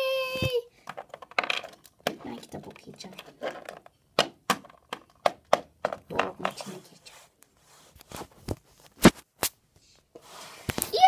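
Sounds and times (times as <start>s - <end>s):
plastic toys and wooden blocks clattering: 0.7s - 6.9s.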